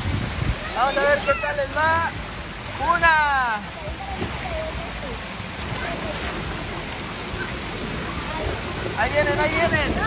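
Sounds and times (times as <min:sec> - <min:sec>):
water rushing down a slide: 0:00.0 - 0:10.0
water splashing into pool: 0:00.0 - 0:10.0.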